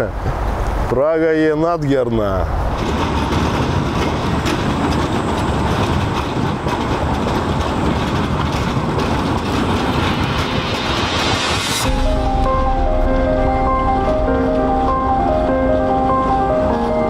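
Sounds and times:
tram wheels rumbling on rail: 0:00.0 - 0:17.0.

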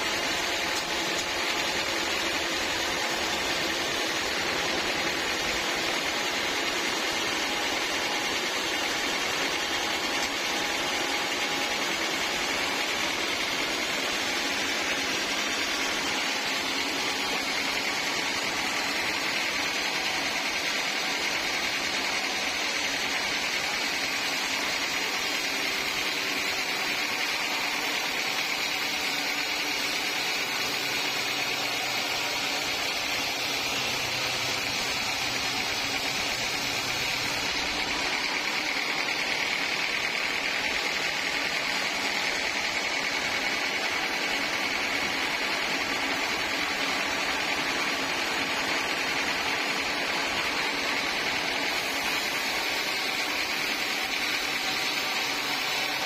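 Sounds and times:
band saw cutting log: 0:00.0 - 0:56.0.

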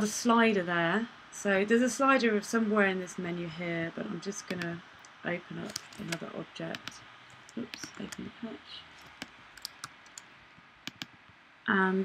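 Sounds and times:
mouse and keyboard clicks: 0:05.6 - 0:08.3, 0:08.9 - 0:11.2.

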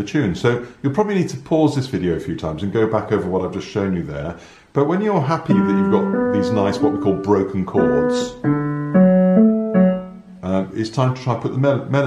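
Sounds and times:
man speaking: 0:00.0 - 0:08.4, 0:10.4 - 0:12.0
digital piano notes: 0:05.4 - 0:10.8.

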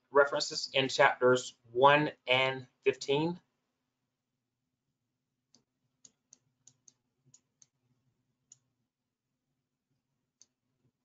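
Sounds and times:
computer mouse clicks: 0:05.5 - 0:07.8.

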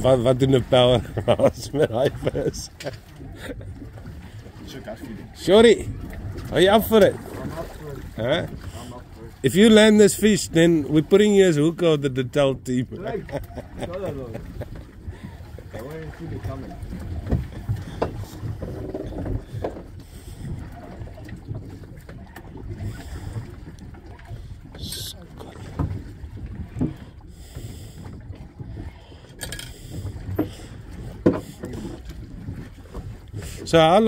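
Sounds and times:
sea and hull rumble: 0:00.0 - 0:34.0
wind buffeting microphone: 0:12.8 - 0:34.0.

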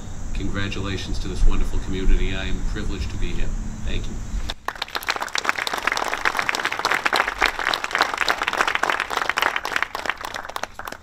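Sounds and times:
audience applauding: 0:04.5 - 0:11.0.

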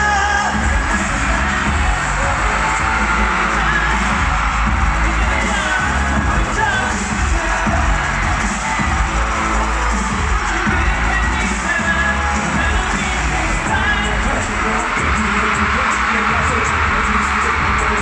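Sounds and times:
fans screaming and cheering: 0:00.0 - 0:18.0
person singing: 0:00.0 - 0:18.0
pop concert music: 0:00.0 - 0:18.0.

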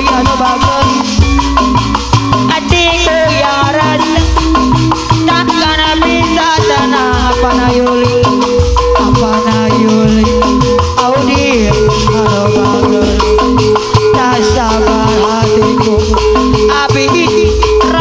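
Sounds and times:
fast hand drumming: 0:00.0 - 0:18.0
gamelan metallophones: 0:00.0 - 0:18.0
gliding held melody line: 0:00.0 - 0:18.0.

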